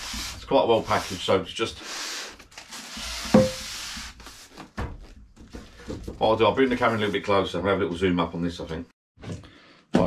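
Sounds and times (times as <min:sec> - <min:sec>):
thump on cardboard box: 0:03.3 - 0:03.6.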